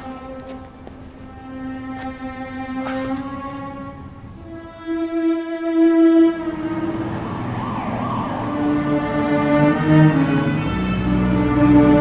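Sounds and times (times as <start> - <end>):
low bowed strings: 0.0 - 12.0
wavering rise-and-fall tone: 3.0 - 12.0.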